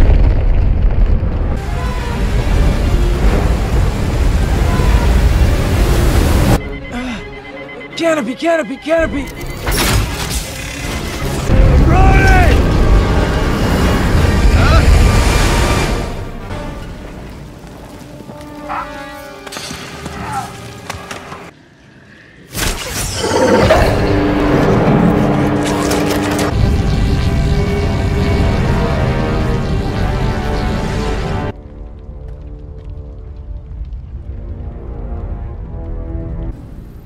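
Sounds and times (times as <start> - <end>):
deep booms and rumbling: 0.0 - 6.6
dramatic music: 1.4 - 21.5, 22.9 - 37.0.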